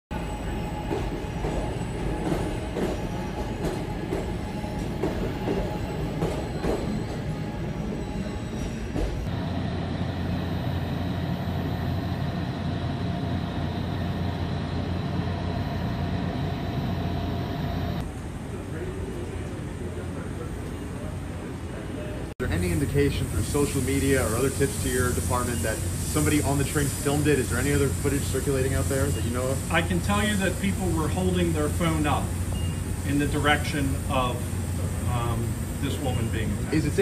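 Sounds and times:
train car ventilation hum: 0.2s - 37.0s
train wheels clicking and knocking: 0.8s - 7.2s.

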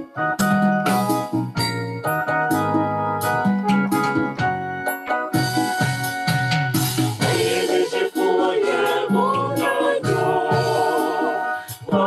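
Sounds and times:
keyboard chords over bass line: 0.0s - 12.0s.

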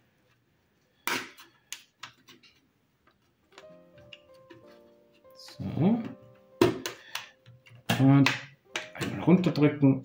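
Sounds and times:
faint background music: 3.6s - 10.0s.

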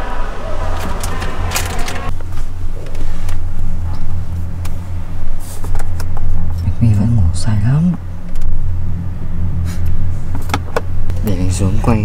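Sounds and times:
car engine rumbling: 0.0s - 12.0s.

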